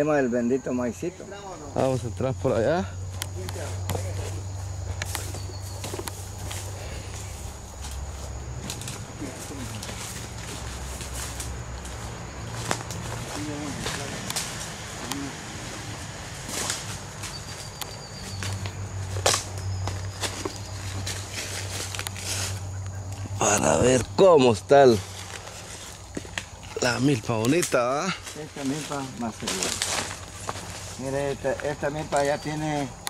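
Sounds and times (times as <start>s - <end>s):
steady low hum: 0.6s - 33.0s
footsteps crunching through dry leaves: 3.0s - 33.0s
twigs crackling and snapping: 3.1s - 24.2s, 25.0s - 33.0s.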